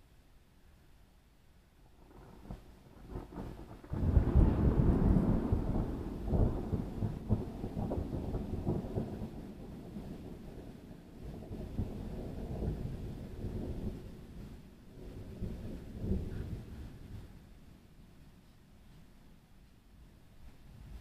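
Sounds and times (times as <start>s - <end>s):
thunder crack and rumble: 1.9s - 17.5s.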